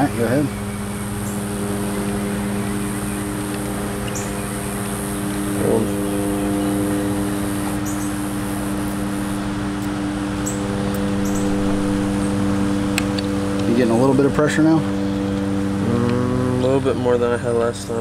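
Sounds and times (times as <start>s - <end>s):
steady machine hum: 0.0s - 18.0s.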